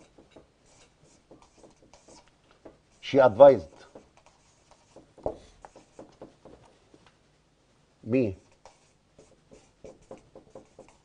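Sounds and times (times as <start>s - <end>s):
marker pen scratching on whiteboard: 0.0s - 7.0s, 8.4s - 11.0s.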